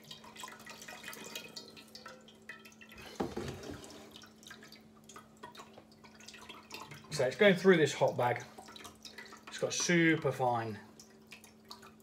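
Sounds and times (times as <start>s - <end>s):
liquid dripping into metal pot: 0.0s - 12.0s.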